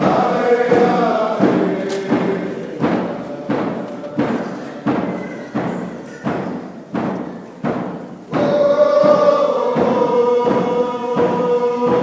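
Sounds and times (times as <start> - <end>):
voices chanting a dance song: 0.0 - 7.0, 8.3 - 12.0
steady drum beat: 0.0 - 12.0.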